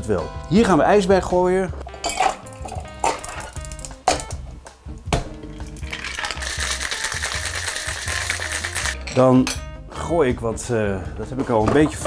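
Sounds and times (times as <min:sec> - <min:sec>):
ice cubes clinking into metal tin: 0:02.0 - 0:04.3, 0:05.6 - 0:09.2
ice rattling in shaker: 0:05.8 - 0:09.0.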